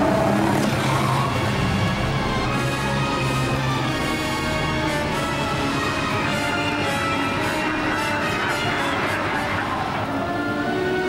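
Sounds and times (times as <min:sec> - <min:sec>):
low musical drone: 0:00.0 - 0:11.0.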